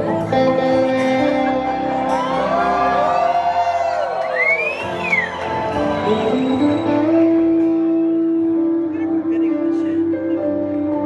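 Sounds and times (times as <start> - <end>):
crowd noise: 0.0 - 11.0
live rock band music: 0.0 - 11.0.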